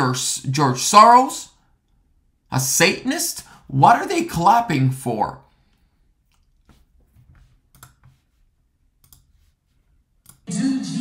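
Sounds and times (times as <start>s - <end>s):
computer mouse clicks: 5.7s - 8.2s, 9.0s - 9.5s, 10.2s - 10.4s
voice over music: 10.5s - 11.0s.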